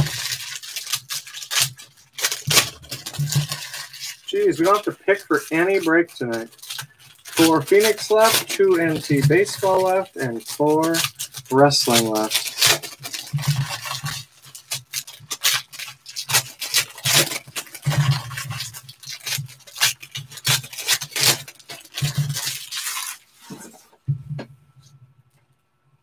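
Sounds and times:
foil wrappers tearing and crumpling: 0.0s - 23.9s
crackling rustles: 0.0s - 24.1s.

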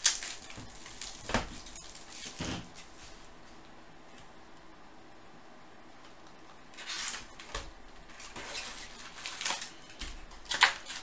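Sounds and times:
foil packs crinkling: 0.0s - 3.3s, 6.7s - 11.0s.

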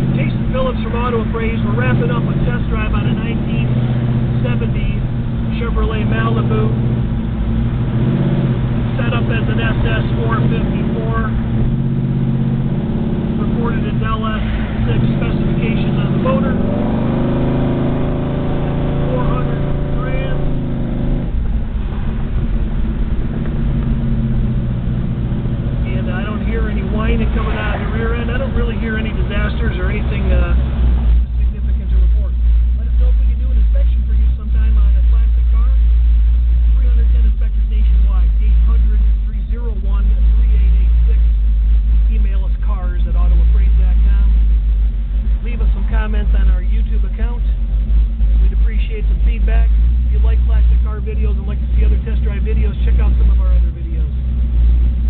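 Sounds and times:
car engine rumble from inside cabin: 0.0s - 55.0s.

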